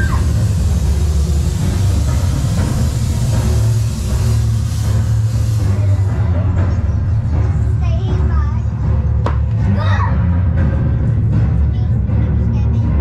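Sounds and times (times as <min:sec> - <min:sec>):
arching whistle-like tone: 0:00.0 - 0:00.5
hiss: 0:00.0 - 0:06.9
loud steady rumbling: 0:00.0 - 0:13.0.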